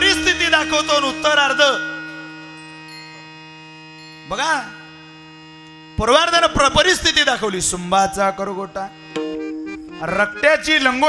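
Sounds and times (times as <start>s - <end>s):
man chanting over loudspeaker: 0.0s - 2.0s, 6.0s - 8.9s
electrical mains hum: 0.0s - 11.0s.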